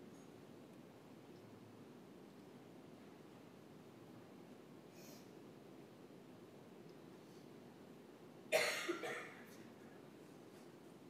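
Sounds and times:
person coughing: 8.5s - 9.5s.

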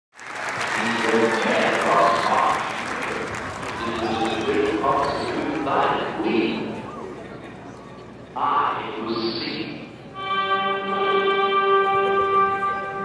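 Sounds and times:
audience applauding: 0.1s - 6.1s
people's voices: 0.8s - 10.2s.

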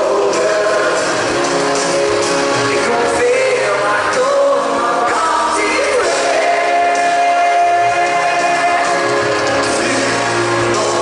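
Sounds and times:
live band playing with vocals: 0.0s - 11.0s.

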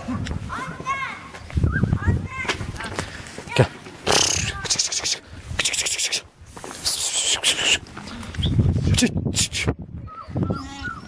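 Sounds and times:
person making hissing shush: 4.1s - 7.9s.

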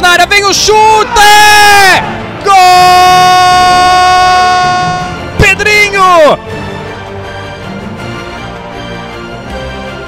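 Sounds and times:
commentator shouting goal: 0.0s - 6.4s.

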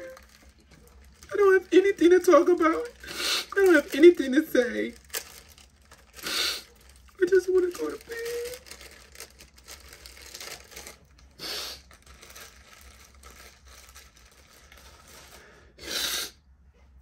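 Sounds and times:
plastic packaging crinkling: 0.0s - 15.7s.

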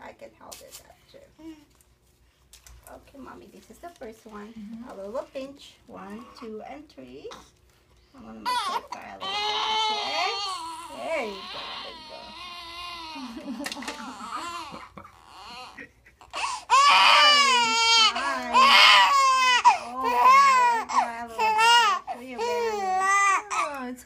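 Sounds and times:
newborn baby crying: 8.2s - 23.8s.

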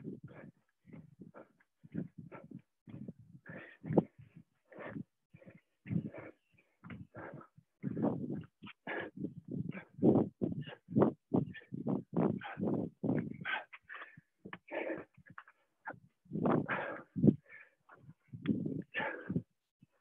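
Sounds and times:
hard quick breathing: 0.0s - 19.5s.

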